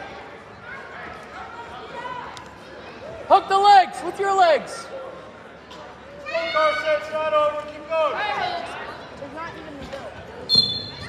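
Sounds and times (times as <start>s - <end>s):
referee's whistle: 10.5s - 11.0s.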